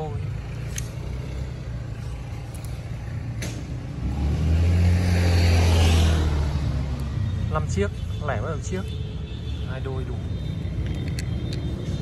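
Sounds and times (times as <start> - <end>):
vehicle engine hum passing: 0.0 - 7.5
low traffic rumble: 0.0 - 12.0.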